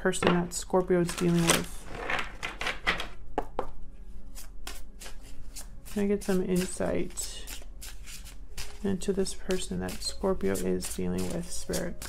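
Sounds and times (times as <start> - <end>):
cards being shuffled: 1.0 - 3.2, 4.4 - 12.0.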